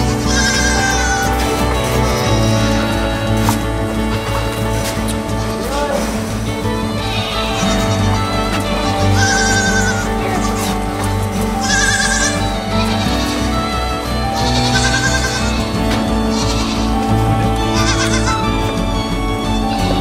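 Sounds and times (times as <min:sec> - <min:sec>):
background music with held notes: 0:00.0 - 0:20.0
goat kids bleating: 0:00.0 - 0:20.0.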